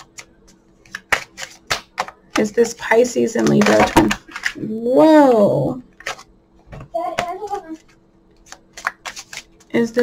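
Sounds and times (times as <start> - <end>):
cards being shuffled: 0.0 - 4.7, 6.0 - 6.3, 7.2 - 10.0
card snaps and taps: 8.4 - 10.0.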